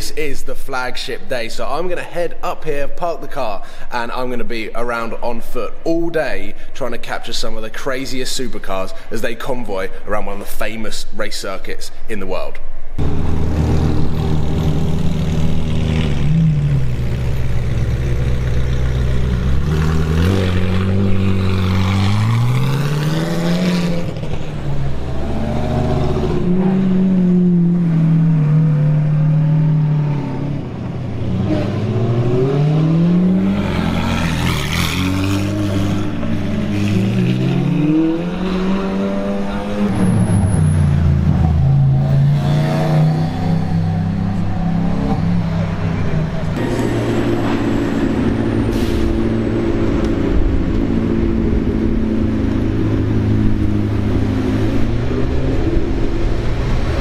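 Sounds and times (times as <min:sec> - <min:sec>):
cars driving past: 0:13.0 - 0:57.0
sports car engines revving: 0:13.0 - 0:57.0.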